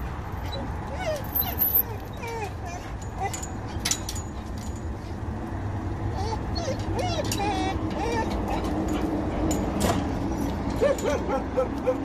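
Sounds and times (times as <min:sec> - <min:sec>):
road traffic rumble: 0:00.0 - 0:12.0
dog whining and whimpering: 0:00.4 - 0:03.8, 0:06.1 - 0:09.1, 0:10.3 - 0:12.0.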